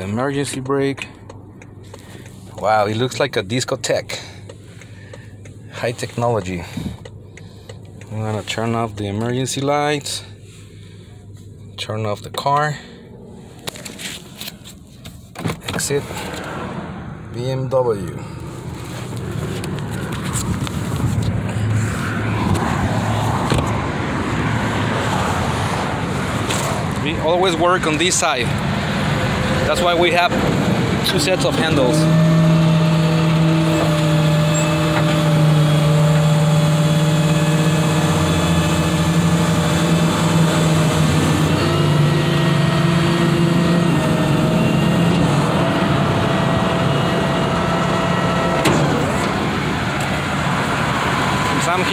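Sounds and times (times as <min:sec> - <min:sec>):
freeway traffic passing: 0:00.0 - 0:51.9.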